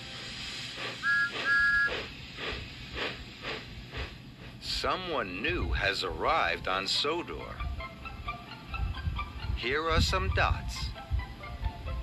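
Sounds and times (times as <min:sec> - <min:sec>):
steam hiss: 0:00.0 - 0:06.2
steam train chuffing: 0:00.0 - 0:12.0
two-note train whistle toots: 0:01.0 - 0:02.1.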